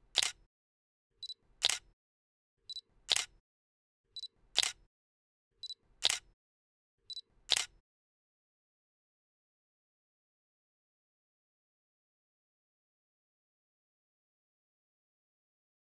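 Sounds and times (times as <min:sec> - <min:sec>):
camera shutter: 0:00.1 - 0:00.5, 0:01.6 - 0:01.9, 0:03.1 - 0:03.3, 0:04.5 - 0:04.8, 0:06.0 - 0:06.3, 0:07.5 - 0:07.8.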